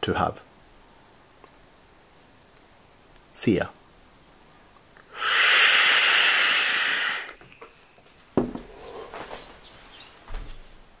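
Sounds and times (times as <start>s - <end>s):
hiss of air through vape: 5.0s - 7.6s
rustling and bumps: 7.6s - 10.9s
knock: 8.4s - 8.7s.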